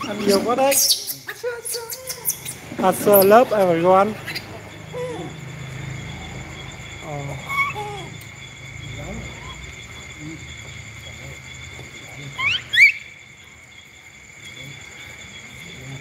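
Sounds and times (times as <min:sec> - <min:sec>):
night insects chirring: 0:00.0 - 0:16.0.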